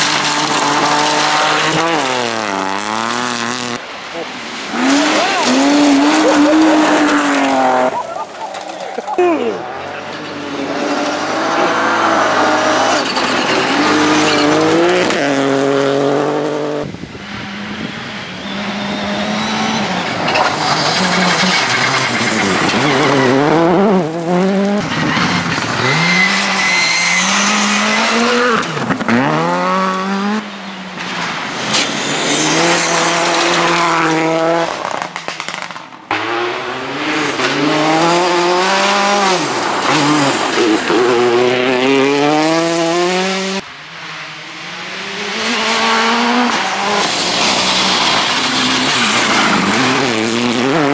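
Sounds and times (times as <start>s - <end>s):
rally car engines revving: 0.0s - 50.9s.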